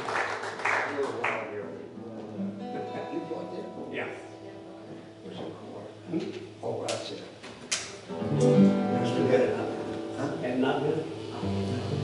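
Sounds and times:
guitar strumming: 1.9s - 7.4s, 8.0s - 12.0s.

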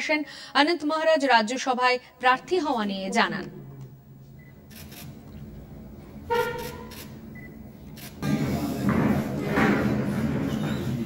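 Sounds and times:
low room noise: 0.0s - 11.0s
horn honk: 6.2s - 6.9s.

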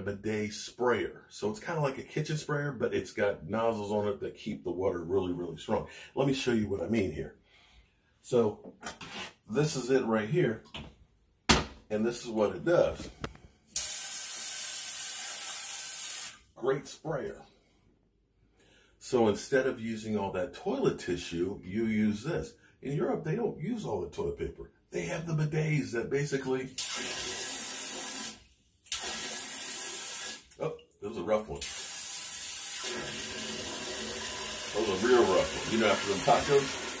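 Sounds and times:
water jet spraying into toilet bowl: 13.8s - 16.4s, 26.8s - 30.6s, 31.6s - 37.0s.

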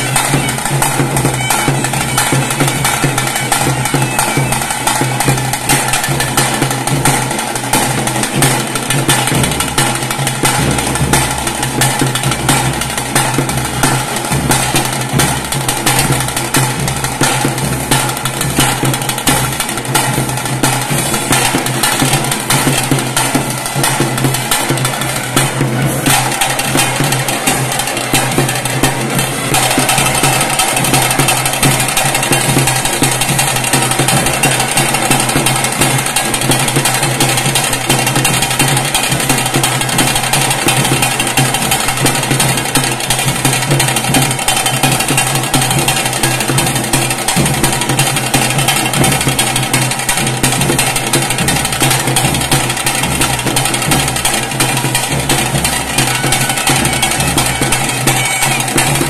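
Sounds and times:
rapid dense drumming: 0.0s - 59.0s.

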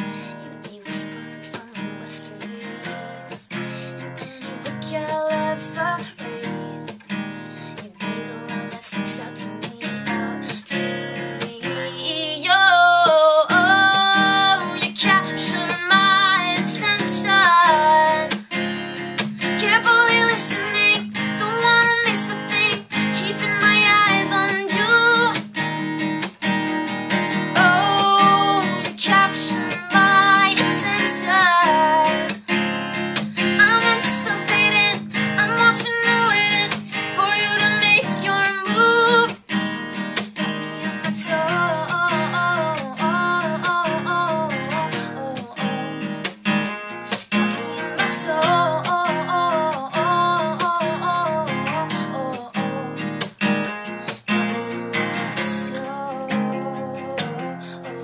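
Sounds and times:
acoustic guitar strumming: 0.0s - 58.0s
woman singing: 0.0s - 58.0s.

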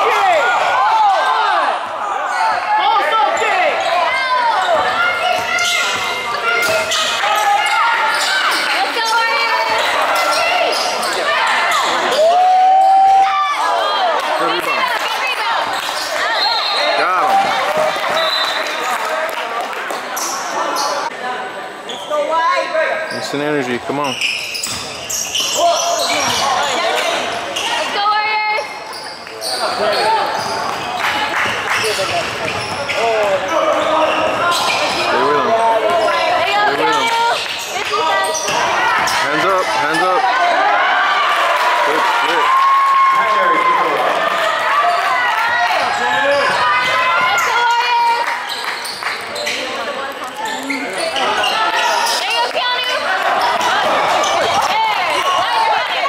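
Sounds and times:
voices shouting in gym: 0.0s - 19.2s, 24.3s - 56.0s
sneakers squeaking on hardwood: 23.0s - 39.8s, 48.4s - 52.6s.

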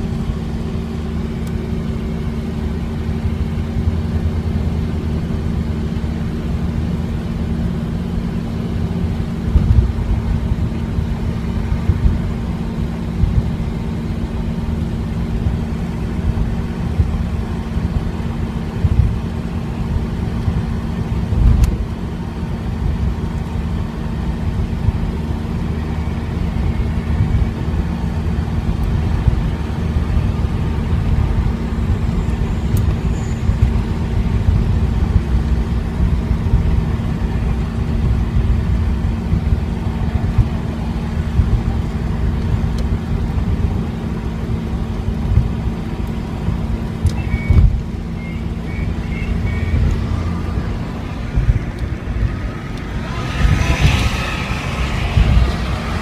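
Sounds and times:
car engine drone: 0.0s - 56.0s
road noise: 0.0s - 56.0s
short low thumps: 49.4s - 54.2s.

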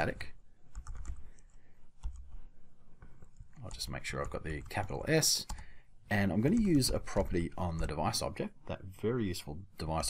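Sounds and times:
keyboard typing: 0.6s - 8.0s.

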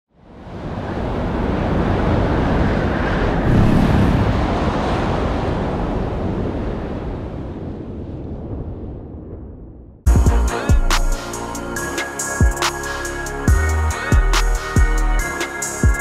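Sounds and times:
deep rushing whoosh: 2.8s - 6.5s.

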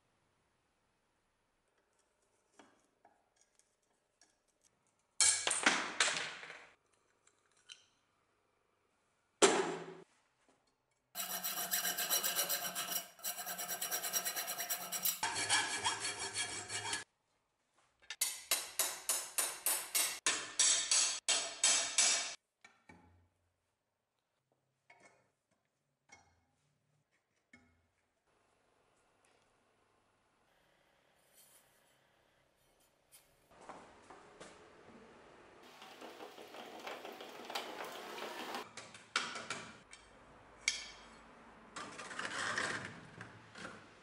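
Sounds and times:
wire brush scrubbing metal blade: 11.2s - 17.0s.

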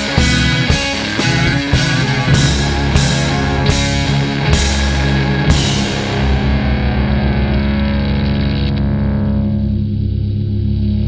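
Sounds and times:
distorted electric guitar chord: 0.0s - 11.0s.

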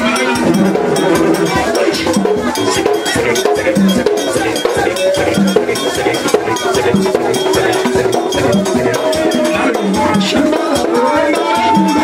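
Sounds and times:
fast percussion beat: 0.0s - 12.0s
man singing into a microphone: 0.0s - 12.0s.

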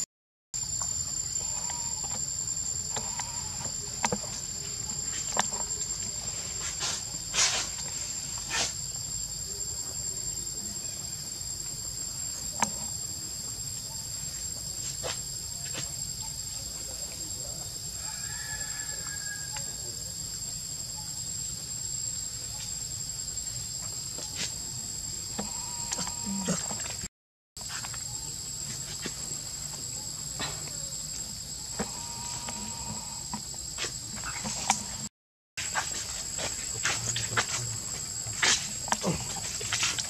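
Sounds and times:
insects droning: 0.6s - 40.0s.

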